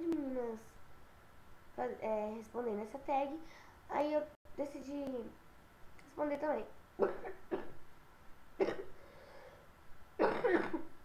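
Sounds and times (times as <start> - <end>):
girl coughing: 7.0 - 7.8, 8.6 - 9.0, 10.2 - 11.0.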